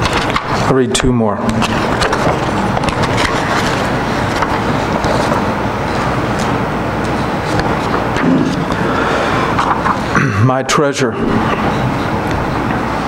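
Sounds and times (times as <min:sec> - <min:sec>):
paper shuffling: 0:00.0 - 0:00.6, 0:01.6 - 0:10.1.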